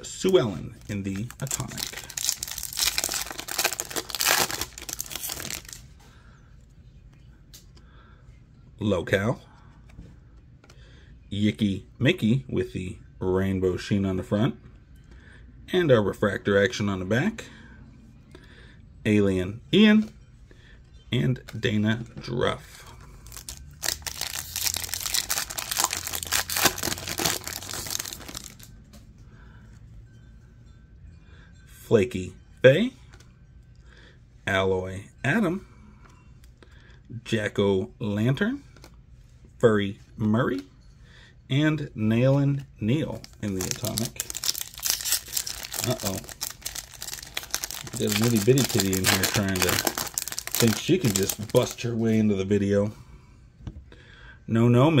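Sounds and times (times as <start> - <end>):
foil wrapper tearing and crinkling: 0.8 - 5.8, 23.2 - 28.7, 43.2 - 51.8.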